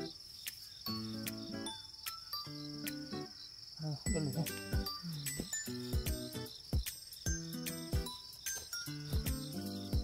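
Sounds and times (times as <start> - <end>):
crickets chirping: 0.0 - 10.0
soft background music: 0.0 - 10.0.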